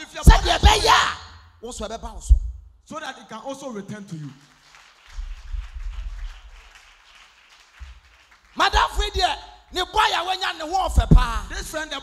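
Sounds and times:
congregation clapping: 0:03.9 - 0:10.8.

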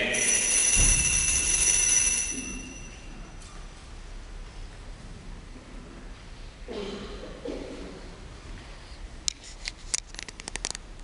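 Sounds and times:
altar bell ringing: 0:00.0 - 0:03.6.

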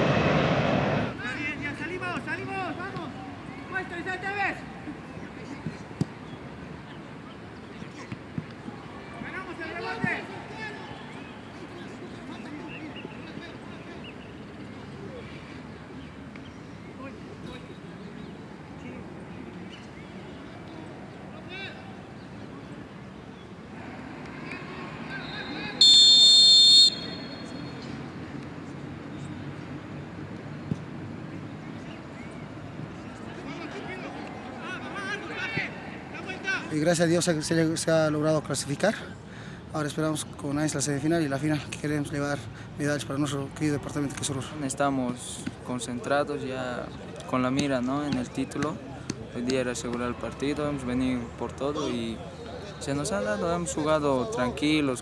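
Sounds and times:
referee whistle blast: 0:25.2 - 0:27.6.

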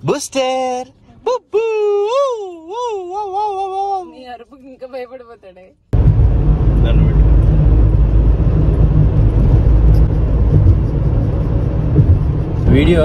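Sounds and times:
tyres and engine rumble: 0:05.8 - 0:13.0.

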